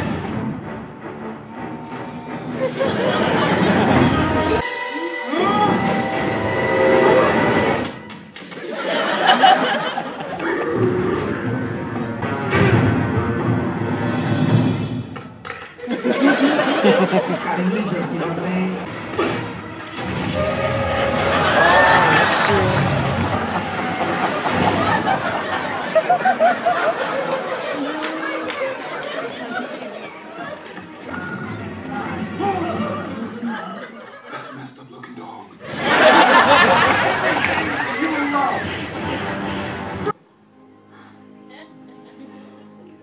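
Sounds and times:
film soundtrack: 0.0s - 34.0s
audience chatter: 1.4s - 12.5s, 15.4s - 40.2s.

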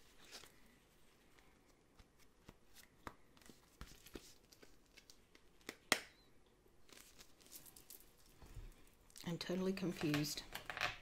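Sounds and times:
plastic pouch crinkling: 6.8s - 9.3s.

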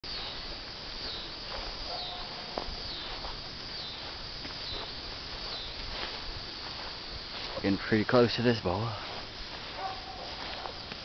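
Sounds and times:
footsteps through tall grass: 0.0s - 11.0s
steady outdoor hiss: 0.0s - 11.0s
faint high chirps: 0.1s - 5.9s.

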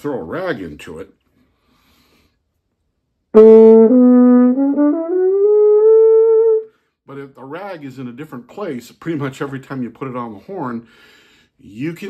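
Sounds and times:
muted trombone notes: 3.4s - 6.6s.

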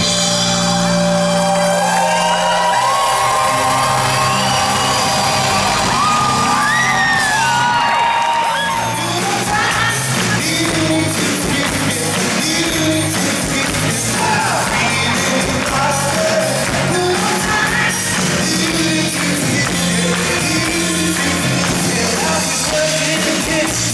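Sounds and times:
audience whooping and singing: 0.0s - 23.9s
rock band playing: 0.0s - 23.9s.

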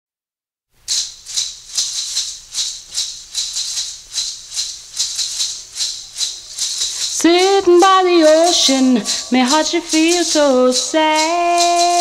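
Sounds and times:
shaker playing steady rhythm: 0.8s - 12.0s.

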